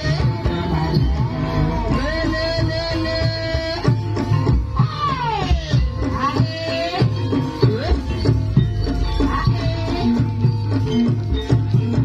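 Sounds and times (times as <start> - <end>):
wavering bending melody: 0.0 - 12.0.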